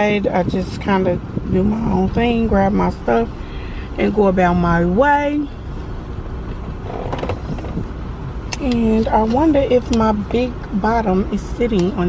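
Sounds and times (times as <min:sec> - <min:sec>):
low hum of car cabin: 0:00.0 - 0:12.0.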